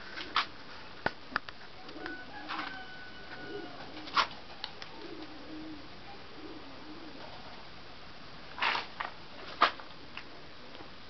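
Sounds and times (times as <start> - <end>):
pigeons cooing: 1.8 - 7.7.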